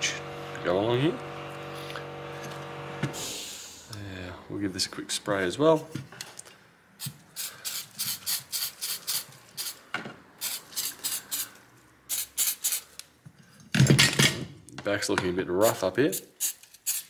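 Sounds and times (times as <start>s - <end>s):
spray can hissing bursts: 7.0s - 9.8s, 10.4s - 11.5s, 12.1s - 13.0s, 16.1s - 17.0s.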